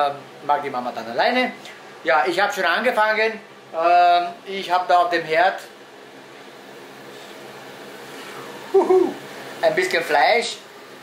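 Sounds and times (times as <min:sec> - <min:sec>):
meat cooking in a pot hissing: 0:06.5 - 0:11.0.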